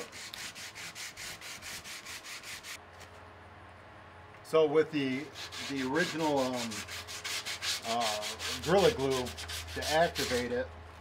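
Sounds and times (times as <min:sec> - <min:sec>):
sandpaper rubbing back and forth: 0:00.0 - 0:02.8, 0:05.2 - 0:10.7.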